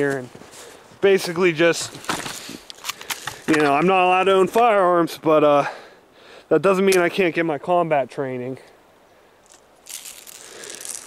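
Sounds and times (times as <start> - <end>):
footsteps crunching through snow: 0.0 - 2.7, 9.4 - 11.0.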